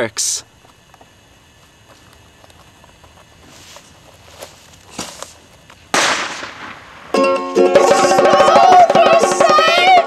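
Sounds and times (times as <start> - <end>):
loud bang: 6.0 - 7.2.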